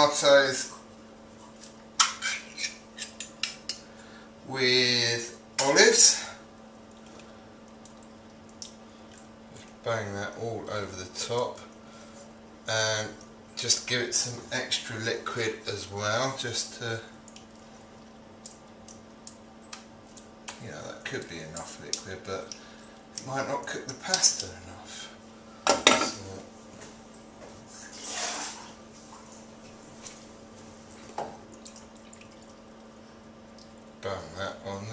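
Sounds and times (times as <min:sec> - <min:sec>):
steady low hum: 0:00.0 - 0:34.9.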